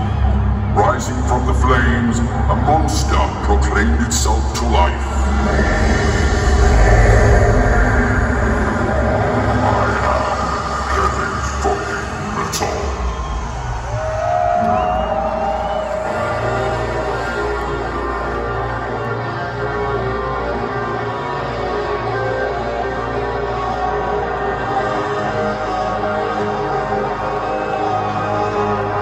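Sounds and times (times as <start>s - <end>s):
crowd noise: 0.0s - 29.0s
ominous music over loudspeakers: 0.0s - 29.0s
heavy low rumble: 4.9s - 17.0s.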